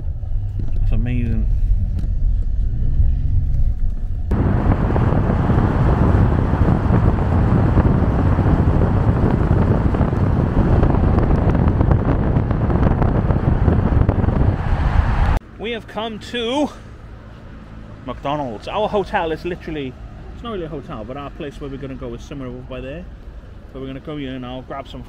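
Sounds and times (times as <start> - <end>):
rush of wind and tyre noise: 0.0 - 15.4
road rumble inside car cabin: 0.0 - 15.5.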